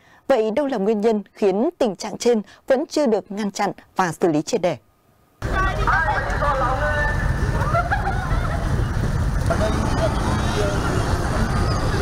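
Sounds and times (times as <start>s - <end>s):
low traffic rumble: 5.4s - 12.0s
people chattering: 5.4s - 12.0s.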